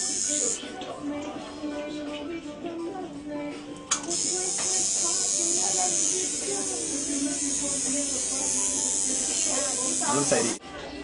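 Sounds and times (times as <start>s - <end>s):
tattoo machine buzzing: 0.0s - 0.6s, 4.0s - 10.6s.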